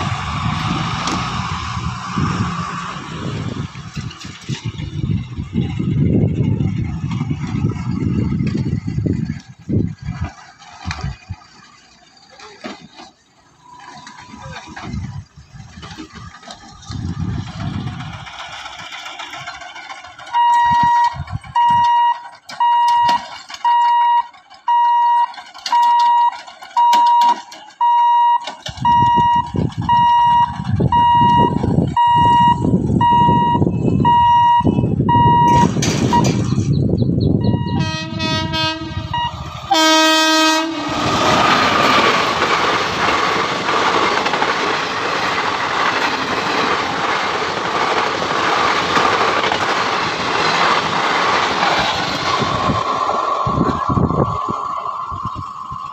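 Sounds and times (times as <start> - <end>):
train coaches rolling over rails: 0.0 - 55.9
level crossing hooter beeping: 13.6 - 14.6, 20.2 - 42.0
locomotive horn: 37.4 - 41.6.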